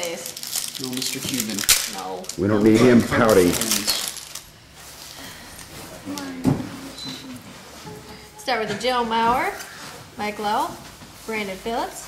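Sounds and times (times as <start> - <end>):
foil pack rustling: 0.0 - 6.4.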